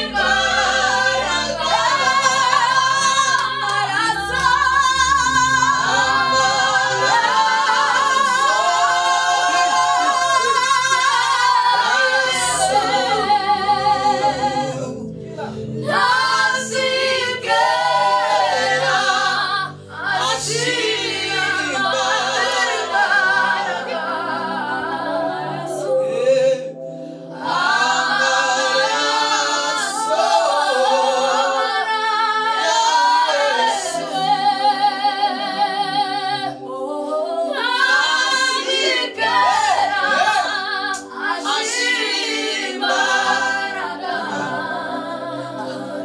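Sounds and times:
vocal group singing gospel: 0.0s - 46.0s.

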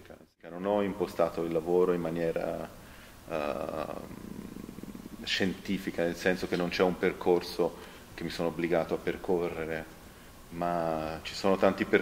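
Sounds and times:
man saying uh with vocal fry: 3.3s - 4.1s.

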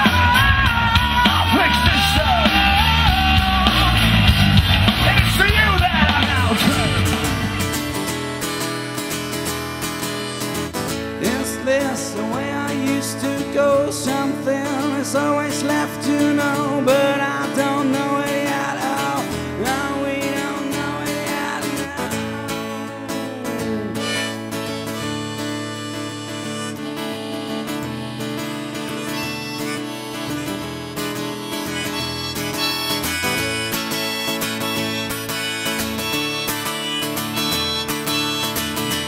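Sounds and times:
person singing: 0.0s - 8.1s, 11.2s - 37.1s
rock music with guitar and drums: 0.0s - 39.0s.

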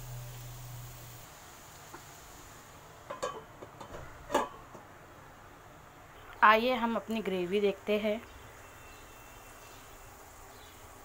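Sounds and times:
metal lid clanking on pan: 3.1s - 4.8s.

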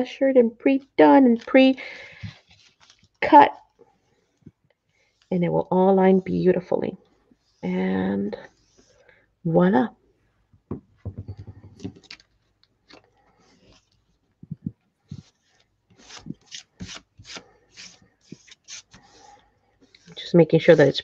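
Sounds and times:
fingers rubbing paper: 7.4s - 9.0s, 13.3s - 14.2s, 15.0s - 21.0s.

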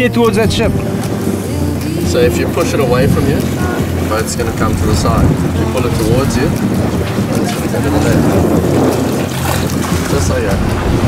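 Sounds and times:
water moving along hull: 0.0s - 11.0s
wind on microphone: 0.0s - 11.0s.

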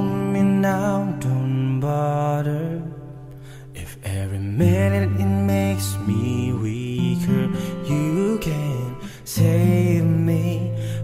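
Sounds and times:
acoustic ballad music: 0.0s - 11.0s.

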